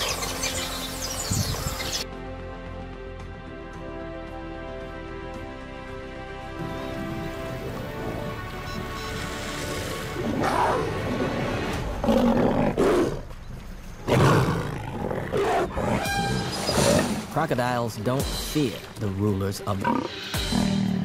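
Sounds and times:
background music: 0.0 - 21.0
lions growling and snarling: 9.5 - 13.3, 14.0 - 17.3.

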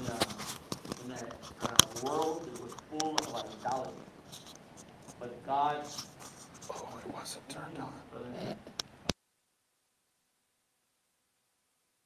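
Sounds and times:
light clicks and rustles: 0.0 - 5.2.

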